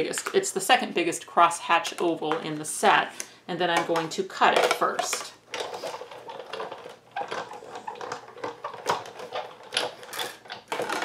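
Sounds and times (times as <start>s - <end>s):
clicks and rattles: 3.8s - 11.0s
die-cutting machine cranked: 7.2s - 11.0s.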